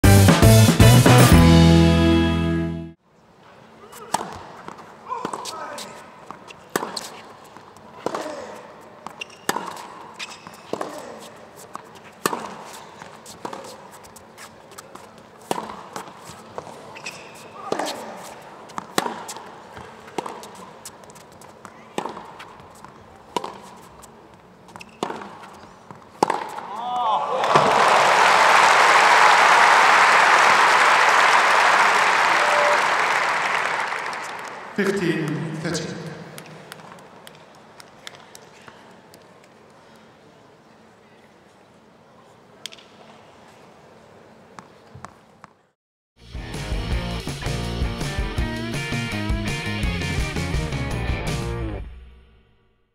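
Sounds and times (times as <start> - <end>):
racket hitting tennis ball: 4.0 - 5.5, 6.7 - 7.3, 8.0 - 13.9, 14.7 - 16.8, 17.6 - 24.1, 24.7 - 26.7
crowd applause: 27.3 - 35.0.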